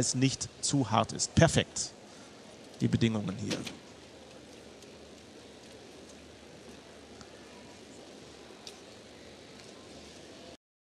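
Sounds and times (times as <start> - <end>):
arena background noise: 0.0 - 10.6
faint clicks: 8.6 - 9.8.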